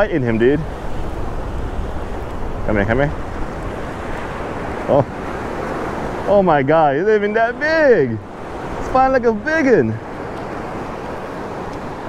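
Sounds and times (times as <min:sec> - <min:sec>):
surf washing over shallows: 0:00.0 - 0:12.0
wind on microphone: 0:00.0 - 0:12.0.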